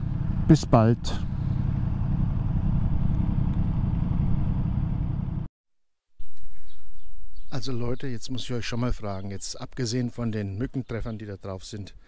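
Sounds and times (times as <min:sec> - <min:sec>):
motorcycle engine rumbling: 0:00.0 - 0:05.5.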